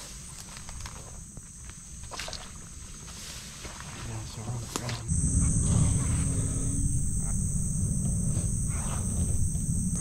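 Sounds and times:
insects droning: 0.0s - 10.0s
low rumble on microphone: 5.1s - 10.0s.

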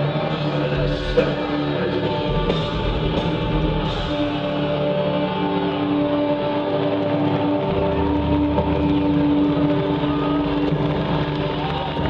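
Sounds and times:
live band drone: 0.0s - 12.0s.

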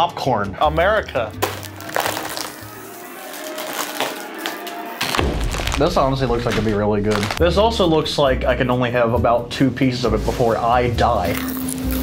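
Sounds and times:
plastic snack bag crinkling: 1.4s - 7.4s.

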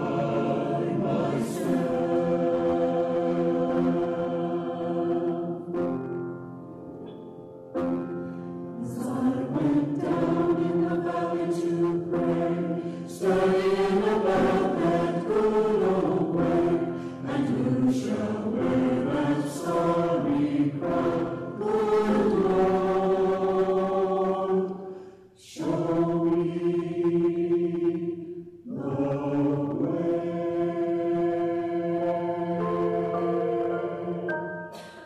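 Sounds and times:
choir singing: 0.0s - 6.0s, 8.8s - 35.0s.

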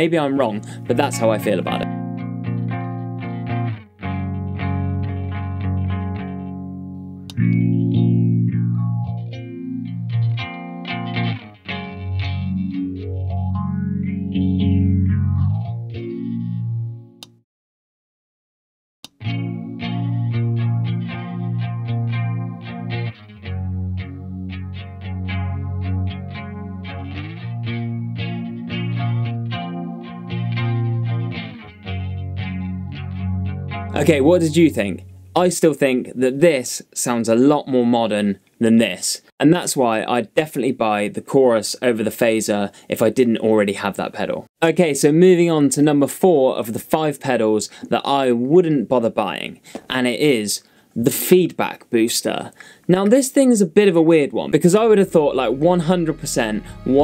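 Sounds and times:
electric guitar strumming chords: 0.0s - 17.4s, 19.1s - 35.5s, 54.5s - 57.0s.

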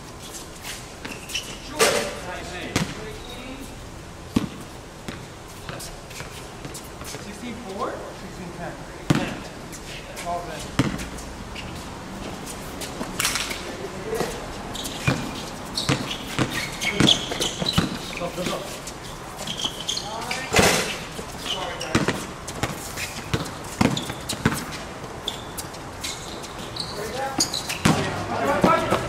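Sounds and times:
basketball bouncing on hard court: 2.7s - 3.0s, 4.3s - 5.8s, 9.1s - 9.5s, 10.8s - 11.1s, 14.2s - 18.6s, 21.5s - 25.6s, 26.5s - 29.0s
players calling out: 6.8s - 29.0s.

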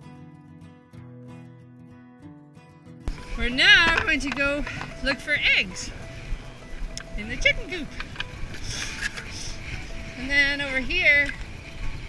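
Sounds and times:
wind rumble on microphone: 3.0s - 12.0s.

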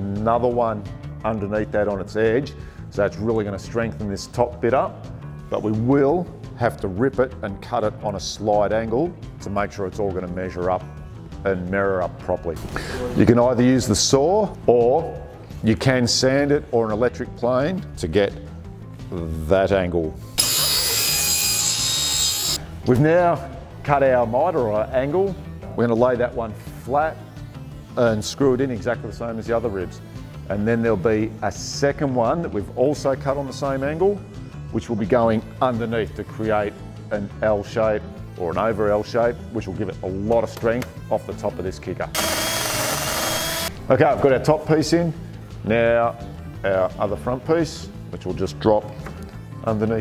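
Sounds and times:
cordless drill running: 20.4s - 22.6s, 42.2s - 43.8s
table saw ripping timber: 20.4s - 22.6s, 42.2s - 43.8s.

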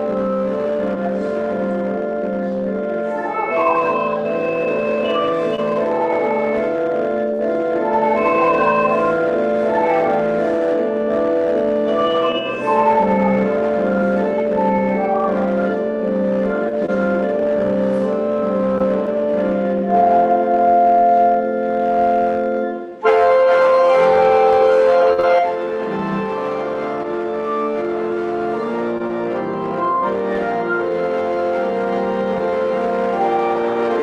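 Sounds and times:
organ playing hymn chords: 0.0s - 34.0s.

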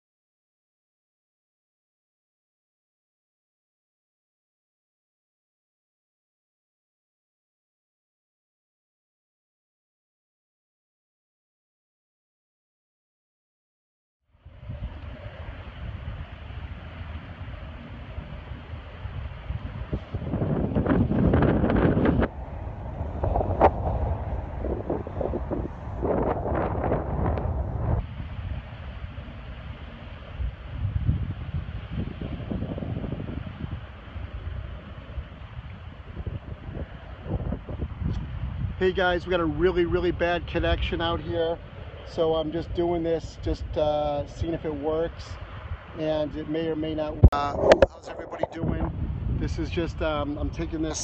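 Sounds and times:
water noise: 14.3s - 51.0s
wind buffeting microphone: 14.4s - 51.0s.

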